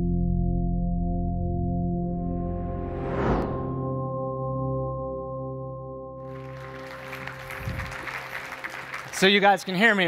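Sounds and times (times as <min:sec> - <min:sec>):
sustained ringing music tones: 0:03.6 - 0:08.9
audience applause: 0:06.3 - 0:10.0.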